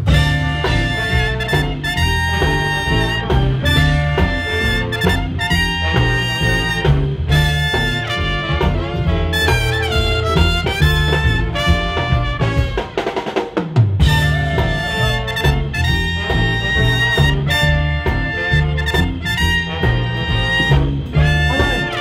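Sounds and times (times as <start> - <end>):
snare drum break: 0.0 - 22.0
swing band playing: 0.0 - 22.0.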